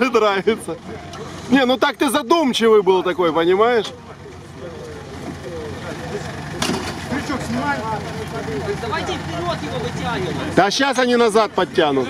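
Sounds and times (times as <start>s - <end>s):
chatter of onlookers: 0.0s - 12.0s
off-road engine idling: 0.0s - 12.0s.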